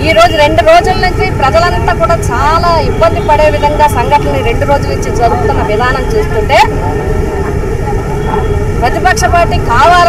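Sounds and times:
woman's voice: 0:00.0 - 0:07.0, 0:08.8 - 0:10.0
faint steady hum: 0:00.0 - 0:10.0
low rumble of background noise: 0:00.0 - 0:10.0.

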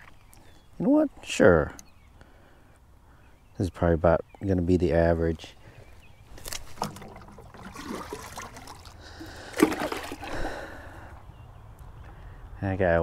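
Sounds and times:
water splashing at pond edge: 0:06.4 - 0:10.8.

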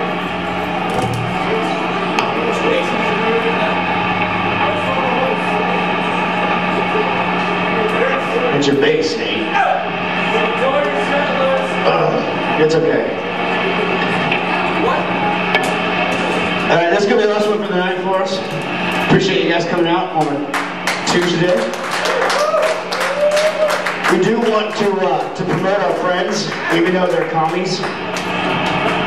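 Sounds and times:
amplifier hum: 0:00.0 - 0:18.1
noisy room: 0:00.0 - 0:29.0
electric guitar noodling: 0:00.7 - 0:02.4
low bass note: 0:00.8 - 0:02.6
sharp knock: 0:00.9 - 0:01.6.

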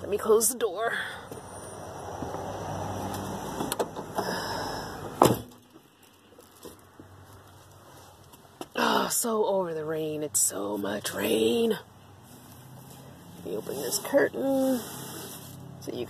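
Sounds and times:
van door slamming shut: 0:05.2 - 0:05.6.

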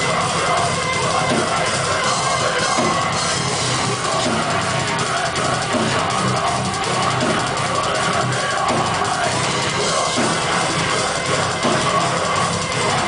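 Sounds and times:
heavy metal band playing live: 0:00.0 - 0:13.0.

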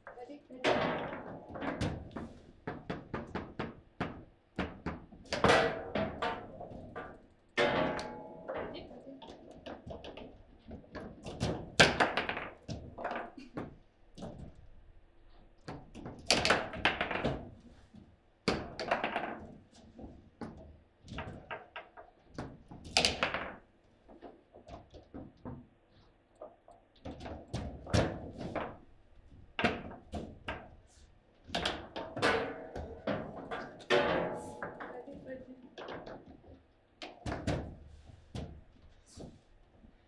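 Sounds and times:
foosball ball clacks and knocks: 0:00.6 - 0:14.7, 0:15.6 - 0:17.7, 0:18.5 - 0:25.8, 0:26.4 - 0:30.8, 0:31.5 - 0:38.7.

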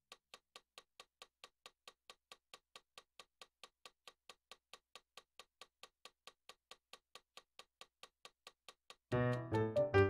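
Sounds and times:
faint metronome clicking: 0:00.0 - 0:10.0.

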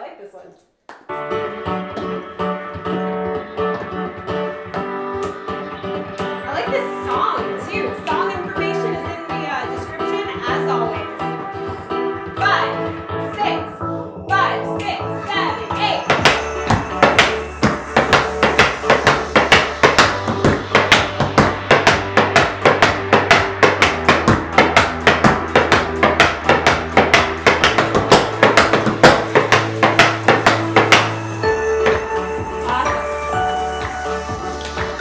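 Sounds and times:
background music with bass: 0:01.1 - 0:35.0
tap shoes on wooden floor: 0:01.7 - 0:05.4, 0:16.1 - 0:31.2.

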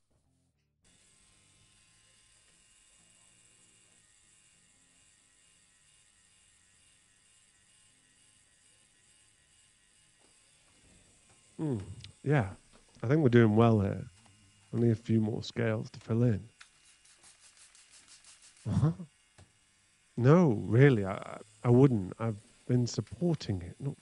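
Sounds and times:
tattoo machine buzzing: 0:00.2 - 0:24.0.

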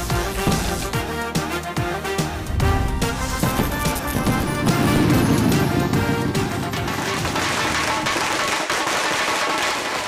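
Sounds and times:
firecrackers crackling: 0:00.0 - 0:10.0.

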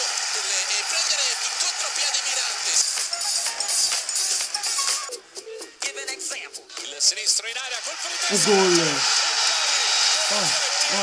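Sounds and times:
man shouting: 0:08.1 - 0:09.1, 0:10.2 - 0:11.0
stadium crowd roaring: 0:08.1 - 0:11.0.

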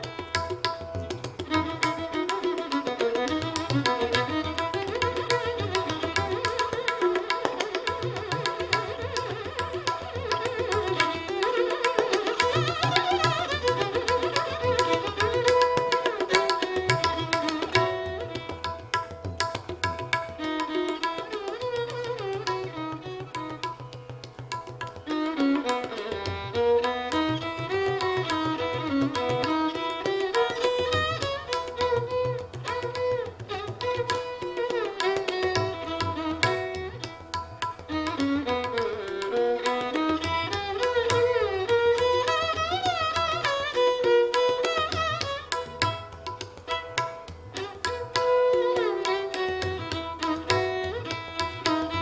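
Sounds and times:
tabla drumming: 0:00.0 - 0:52.0
violin melody gliding between pitches: 0:00.0 - 0:52.0.

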